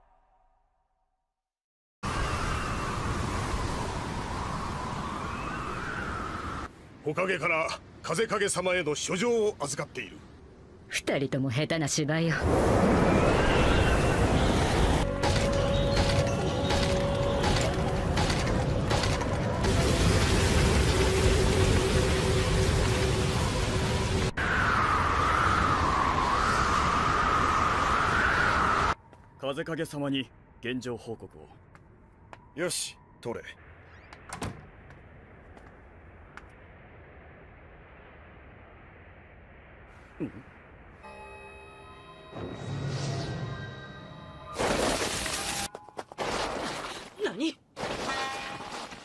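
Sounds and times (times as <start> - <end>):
wavering whistle of wind: 2.0 - 6.8, 12.6 - 17.5, 24.3 - 29.0
howling wind: 2.0 - 8.1, 12.3 - 41.2
low held tone: 41.0 - 44.6.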